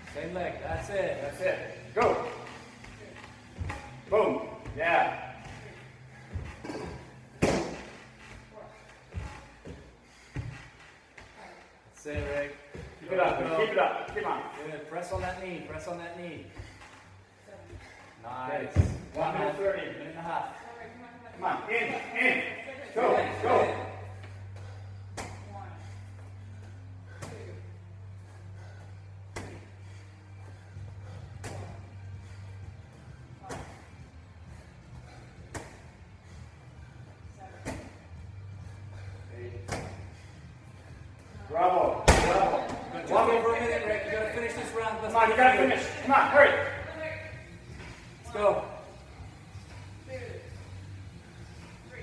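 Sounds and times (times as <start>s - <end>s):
medicine ball smacking a wall: 7.4s - 7.9s, 42.0s - 42.8s.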